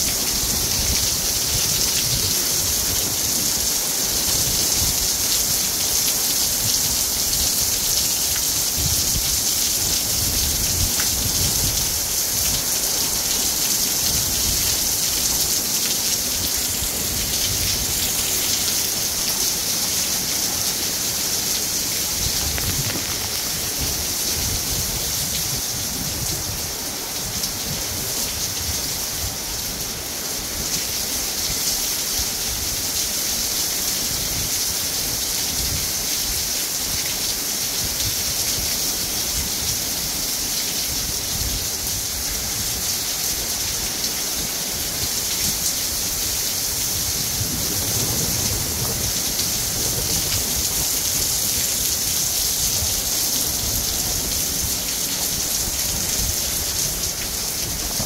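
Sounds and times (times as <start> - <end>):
rumble of wind gusts: 0.0 - 33.3, 40.9 - 58.0
heavy rain pouring: 0.0 - 58.0.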